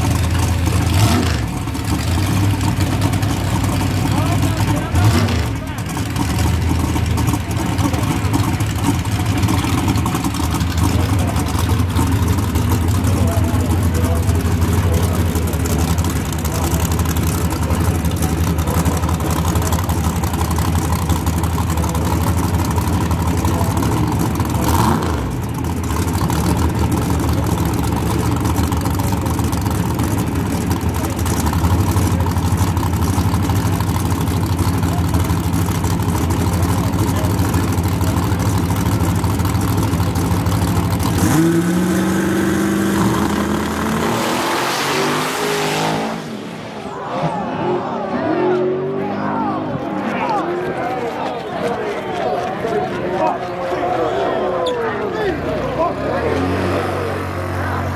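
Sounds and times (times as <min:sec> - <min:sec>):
car engine idling and revving: 0:00.0 - 0:53.9, 0:55.1 - 0:57.9.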